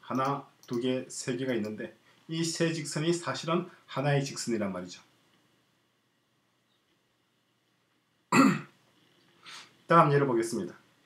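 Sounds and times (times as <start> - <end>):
person coughing: 8.3 - 8.8.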